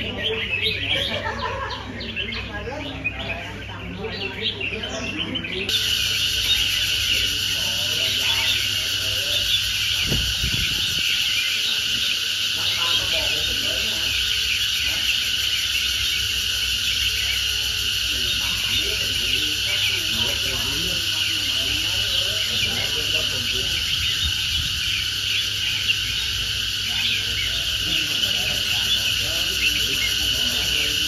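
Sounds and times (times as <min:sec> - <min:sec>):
cicadas chorus: 0:00.0 - 0:31.0.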